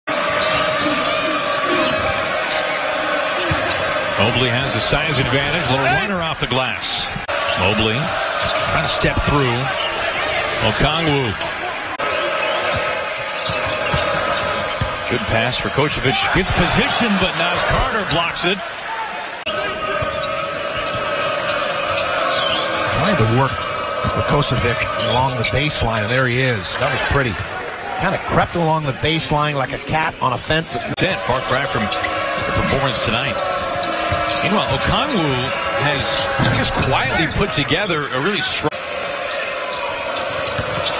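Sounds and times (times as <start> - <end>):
arena crowd noise: 0.0 - 40.9.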